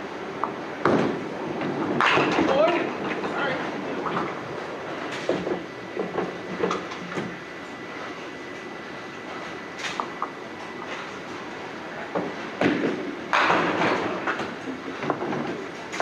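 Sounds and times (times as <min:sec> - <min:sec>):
bowling balls rolling: 0:12.3 - 0:16.0.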